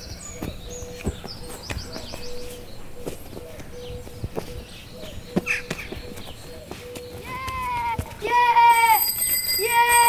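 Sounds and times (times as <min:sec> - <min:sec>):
football kicked and bouncing: 0:00.3 - 0:02.3, 0:05.3 - 0:08.3.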